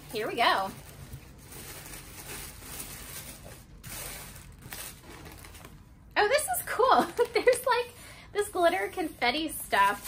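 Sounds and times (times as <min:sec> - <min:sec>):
tissue paper and plastic rustling: 0:00.0 - 0:10.0.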